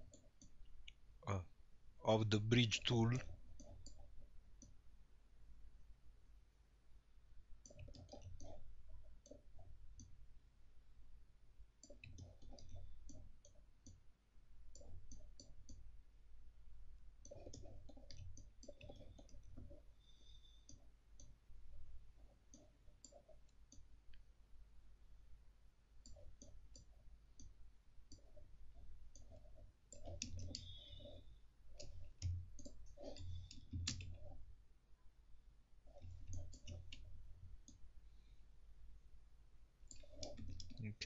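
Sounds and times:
computer mouse clicks: 7.6 - 8.6, 9.2 - 10.2, 11.8 - 14.0, 14.7 - 15.9, 17.2 - 21.4, 22.4 - 24.2, 26.0 - 28.5, 29.1 - 34.4, 35.9 - 37.8, 39.9 - 40.8.

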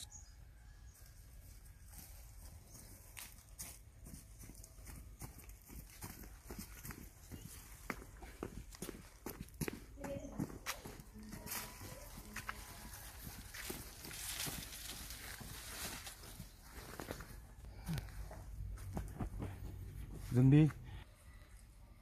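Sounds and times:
footsteps on grass and pavement: 1.4 - 20.8
leaves and branches rustling: 10.6 - 18.1.

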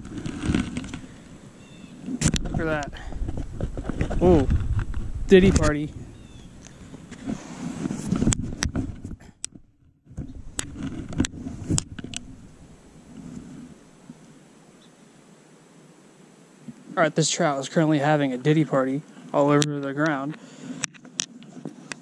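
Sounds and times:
outdoor background: 0.0 - 22.0
wind rumble on microphone: 2.1 - 13.8.

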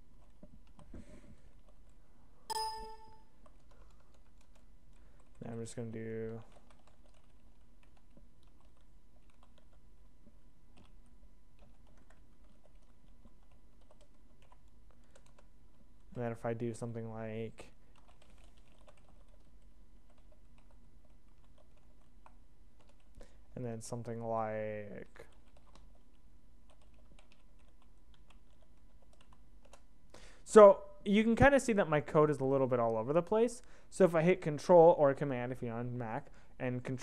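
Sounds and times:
short electronic chime: 2.5 - 3.2
faint keyboard clicks: 3.4 - 16.2, 25.2 - 29.9.

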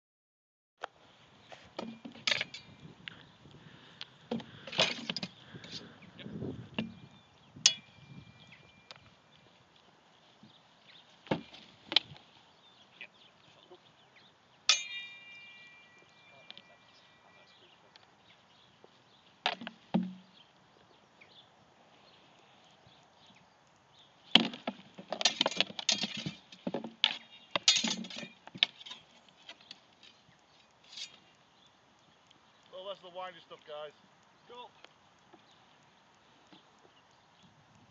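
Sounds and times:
blade ringing: 7.7 - 8.9, 14.7 - 17.5
swords striking shields: 14.7 - 15.8, 19.5 - 20.3, 24.4 - 29.0
swords clashing: 14.7 - 16.0, 27.1 - 29.1
swords knocking on wooden shields: 19.5 - 20.3.

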